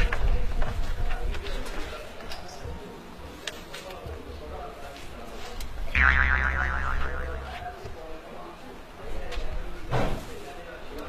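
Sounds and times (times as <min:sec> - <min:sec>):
cartoon boing sound effect: 0:06.0 - 0:07.6
low hum: 0:06.0 - 0:07.6.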